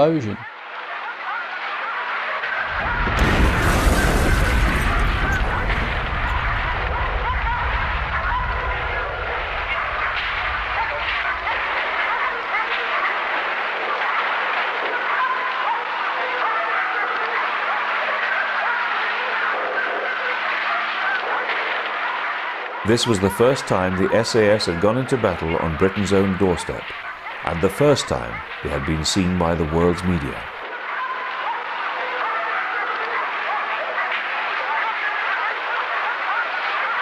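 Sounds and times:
din of many voices: 0.0 - 37.0
explosion rumble: 2.6 - 12.8.

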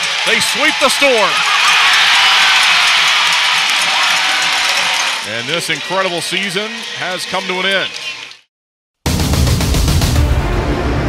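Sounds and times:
loud arena crowd noise: 0.0 - 8.5.

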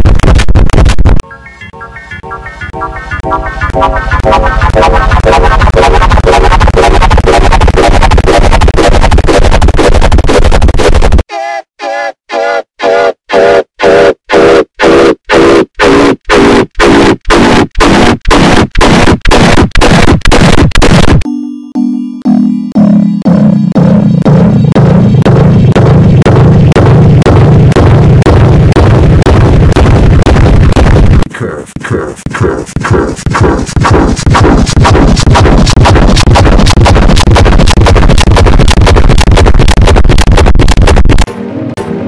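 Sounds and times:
distorted stuttering pitched pulses: 0.0 - 1.2, 2.2 - 11.2, 12.3 - 21.2, 22.7 - 41.3.

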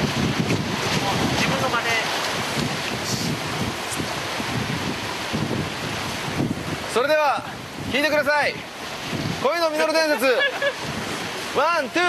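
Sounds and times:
sea waves washing against rocks: 0.0 - 12.0
wind on microphone: 0.0 - 12.0.

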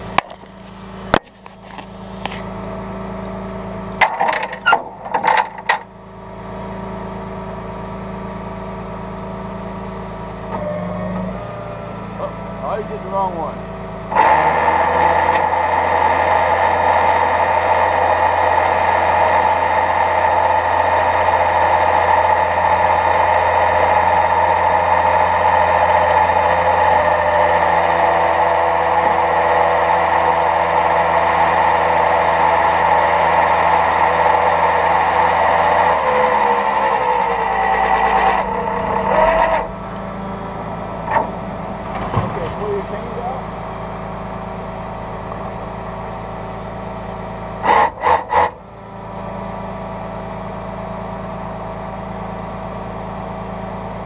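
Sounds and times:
truck engine at raised revs: 0.0 - 54.0
hydraulic winch whine: 1.4 - 5.9, 14.0 - 50.2.

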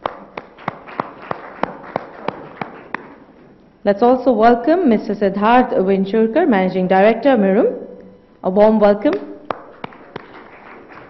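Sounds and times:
scattered applause: 0.0 - 3.2, 9.5 - 11.0.

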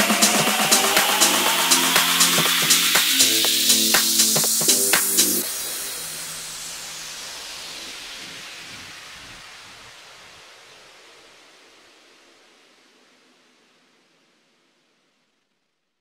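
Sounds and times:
falling white-noise sweep: 0.0 - 14.8.

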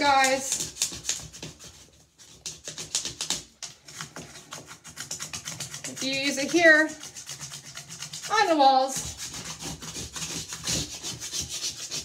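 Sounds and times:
plastic hanger scraping tiles: 0.0 - 12.0.

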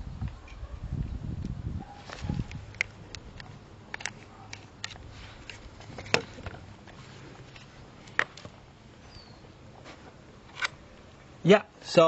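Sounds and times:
handling rustle: 1.8 - 8.6.

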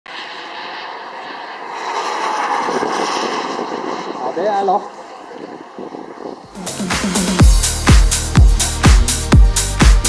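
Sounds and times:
model jet turbine engine: 0.1 - 6.6.

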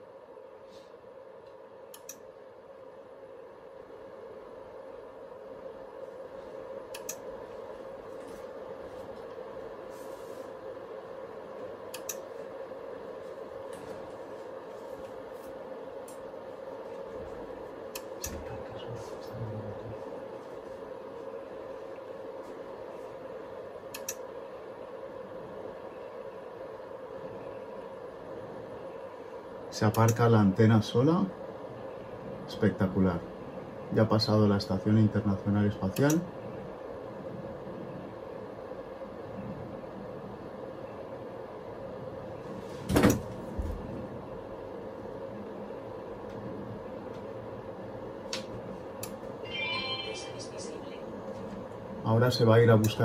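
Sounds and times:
sharp clicks: 6.9 - 7.2, 11.9 - 12.2, 23.9 - 24.2.

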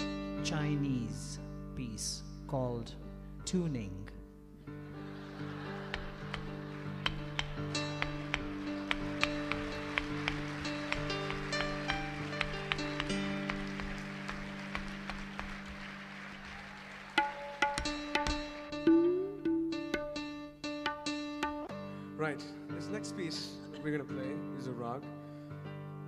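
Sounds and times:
tabla tapping: 5.9 - 15.6, 17.1 - 20.2, 20.8 - 21.8.

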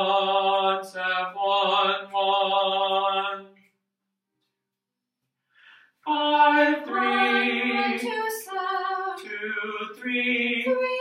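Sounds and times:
person chanting: 6.1 - 11.0.

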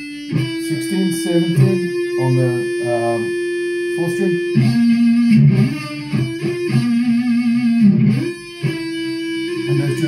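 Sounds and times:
electric guitar lead phrase: 0.0 - 10.0.

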